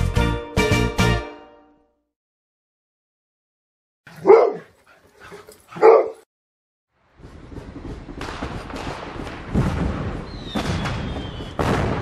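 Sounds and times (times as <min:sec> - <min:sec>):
dog barking: 0:04.1 - 0:06.3.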